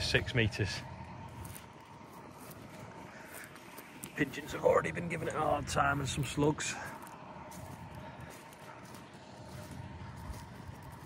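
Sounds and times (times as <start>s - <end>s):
footsteps on muddy ground: 0.8s - 11.0s.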